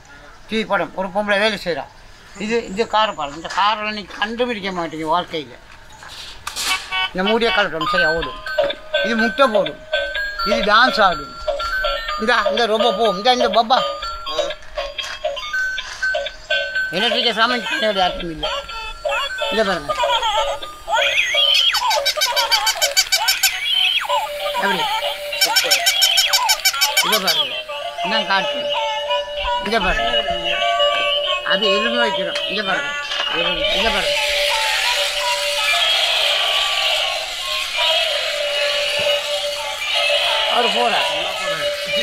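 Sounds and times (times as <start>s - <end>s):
electronic toy chirps and tunes: 6.7s - 42.0s
recorded baby giggles: 18.4s - 27.6s
fast high clicks: 19.1s - 27.6s, 34.0s - 42.0s.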